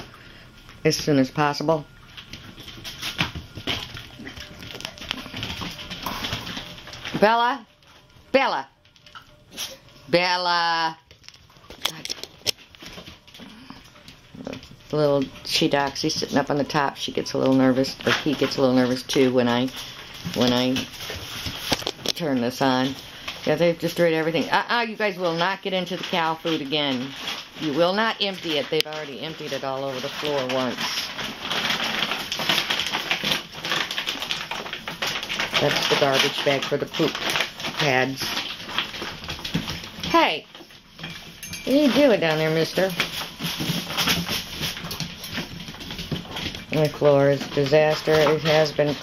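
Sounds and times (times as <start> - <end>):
paper and plastic rustling: 0.0 - 49.0
plastic bags crinkling: 0.0 - 49.0.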